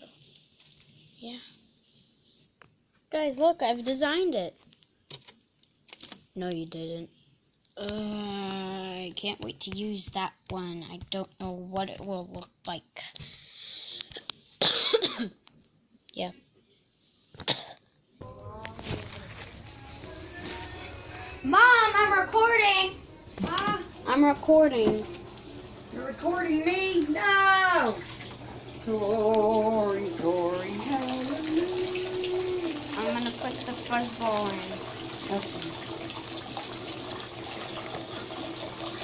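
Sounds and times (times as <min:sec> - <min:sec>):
water running: 0:07.8 - 0:12.6, 0:18.4 - 0:39.0
person coughing: 0:14.6 - 0:15.4, 0:17.4 - 0:17.8
person humming low note: 0:30.6 - 0:33.0.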